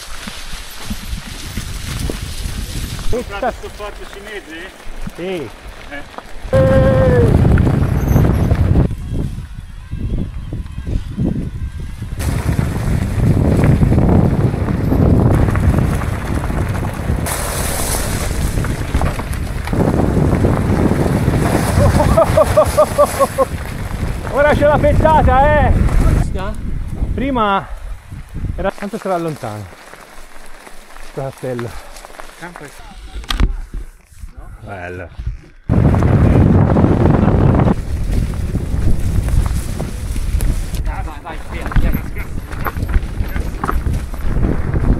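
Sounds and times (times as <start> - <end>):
wind buffeting microphone: 0.0 - 28.8, 33.0 - 44.9
bike tyres rolling on gravel: 0.0 - 35.0, 35.6 - 44.9
bike clattering over ground: 12.2 - 24.7, 41.4 - 44.9.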